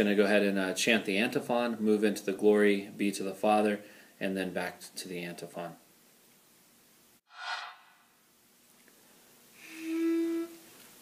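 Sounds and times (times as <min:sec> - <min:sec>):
breath: 0:03.8 - 0:04.2.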